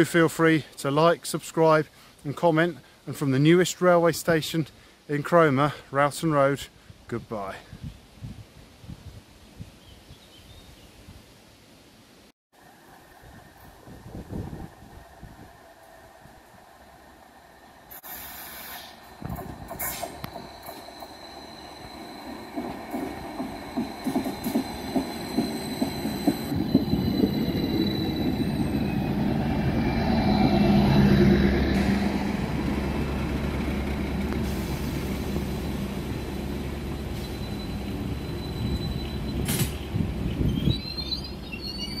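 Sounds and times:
train engines running: 12.6 - 40.3
train rumble: 12.6 - 41.4
high whine of wheels: 12.6 - 41.8.

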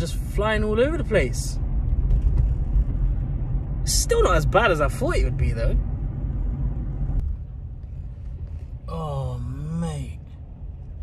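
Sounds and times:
car cabin rumble while driving: 0.0 - 11.0.

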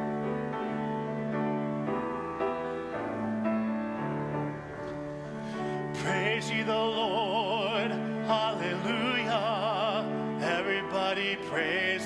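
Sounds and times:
grand piano playing hymn chords: 0.0 - 12.0.

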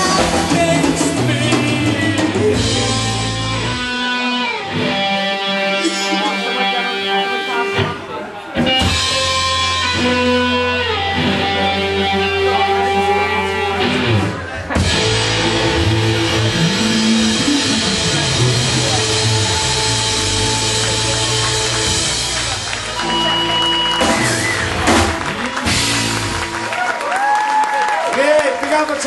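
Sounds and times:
rock song with guitar and drums: 0.0 - 26.7.

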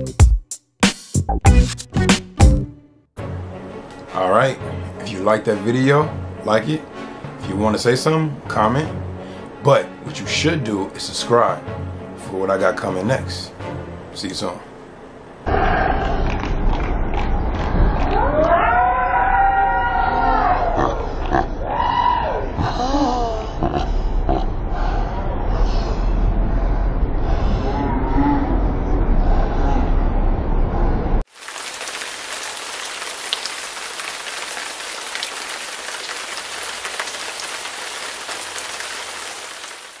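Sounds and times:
rain-like hiss: 31.3 - 40.0.

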